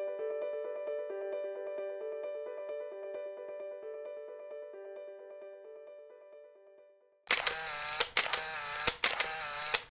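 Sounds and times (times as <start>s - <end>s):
camera shutter and motor drive: 7.3s - 9.9s.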